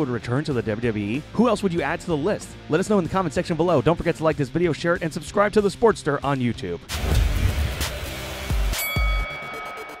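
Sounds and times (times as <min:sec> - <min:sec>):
deep hits: 0:06.9 - 0:08.2
bright bell-like chime: 0:08.7 - 0:10.0.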